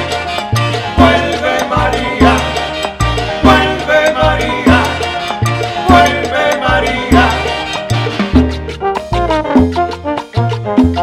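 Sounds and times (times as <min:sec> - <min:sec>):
bass notes: 0:00.0 - 0:11.0
horn section: 0:00.0 - 0:11.0
latin dance orchestra: 0:00.0 - 0:11.0.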